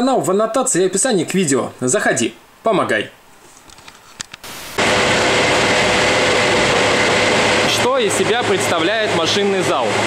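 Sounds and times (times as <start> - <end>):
electric motors and pumps droning: 4.4 - 10.0
steady machine whine: 4.4 - 10.0.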